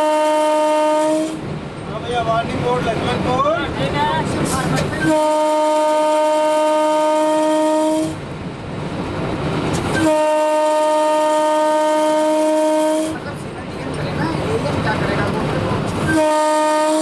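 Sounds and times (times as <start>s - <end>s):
locomotive horn blasts: 0.0s - 1.4s, 5.0s - 8.2s, 10.0s - 13.2s, 16.0s - 17.0s
train running on track: 0.0s - 17.0s.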